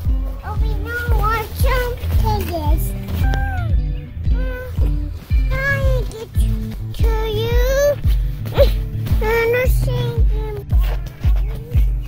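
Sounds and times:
music with steady bass beat: 0.0s - 12.0s
person singing: 2.8s - 12.0s.

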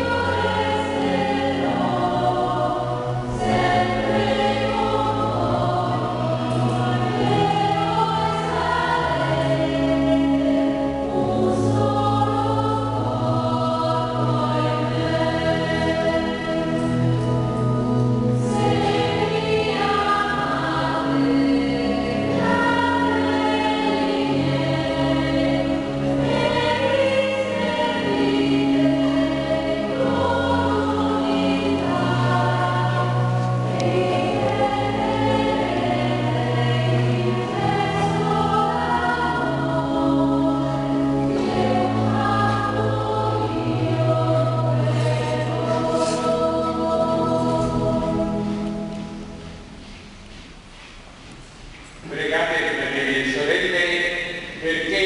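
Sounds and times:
church choir singing a hymn: 0.0s - 49.9s, 52.1s - 55.0s.

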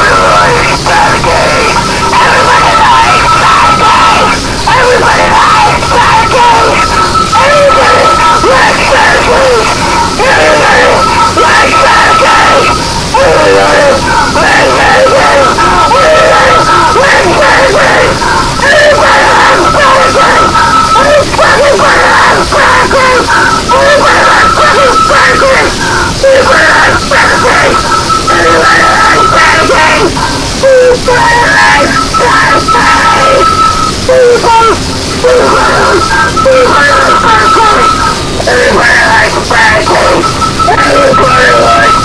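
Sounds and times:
distorted yelled vocals: 0.0s - 42.0s
high feedback whine: 0.0s - 42.0s
wall of distorted noise: 0.0s - 42.0s.

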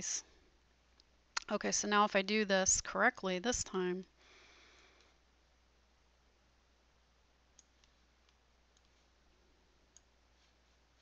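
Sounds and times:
faint low hum: 0.0s - 11.0s
computer mouse clicks: 7.6s - 9.0s, 9.9s - 10.1s.

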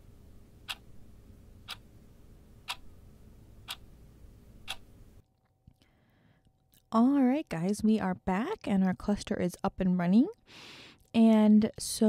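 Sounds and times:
faint low hum: 0.0s - 12.0s
clock ticking: 4.6s - 4.8s.

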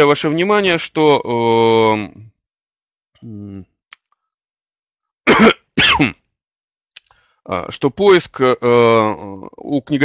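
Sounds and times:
man saying uh: 3.2s - 3.7s
man coughing: 5.3s - 6.2s.

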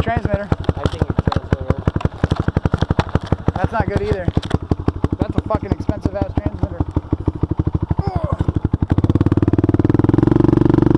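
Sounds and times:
atv engine idling and revving: 0.0s - 10.9s.

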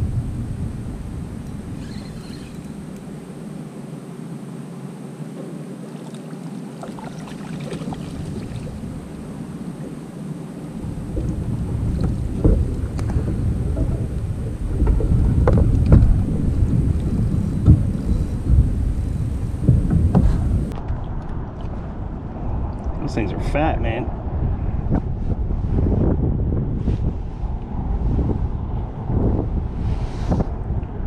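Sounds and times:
water against kayak hull: 0.0s - 3.6s, 5.3s - 22.2s
wind rumbling on microphone: 0.0s - 31.0s
splashes: 5.9s - 10.1s
sharp knocks: 19.4s - 20.8s.

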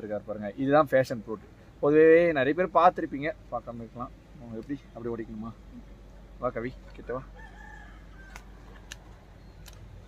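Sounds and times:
rooster crowing faintly: 7.2s - 9.4s
sharp clicks: 8.3s - 9.9s.

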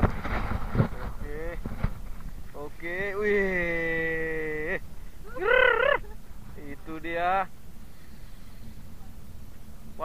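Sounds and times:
man yelling excitedly: 5.3s - 6.1s.

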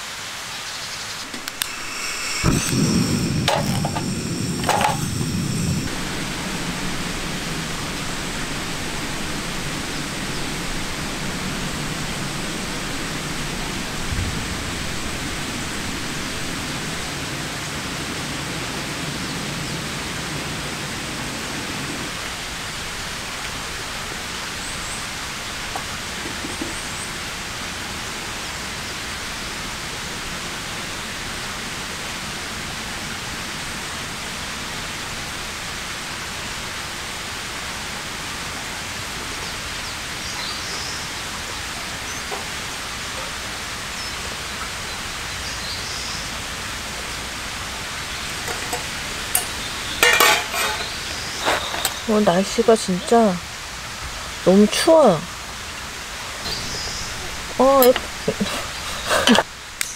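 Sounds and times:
rushing water: 0.0s - 59.9s
low rumble: 1.3s - 17.0s.

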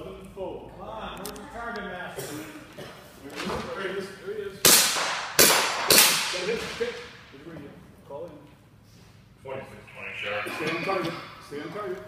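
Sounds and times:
handgun shots ringing in hall: 4.6s - 6.8s
men shouting: 10.0s - 11.5s.

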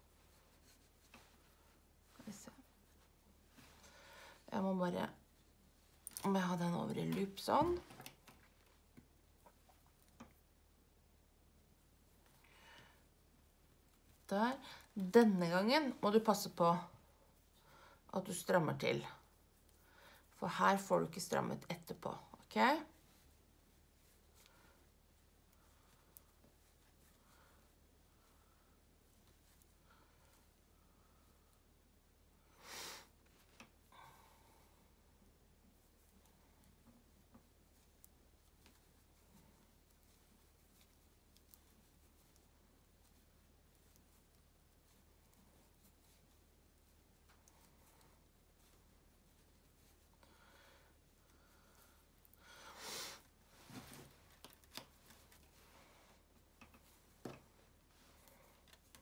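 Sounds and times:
knitting needles rustling yarn: 0.0s - 59.0s
knitting needles clicking: 54.3s - 55.5s.

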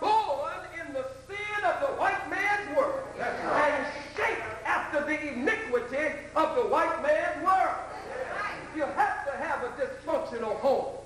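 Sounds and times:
man talking: 0.0s - 11.0s.

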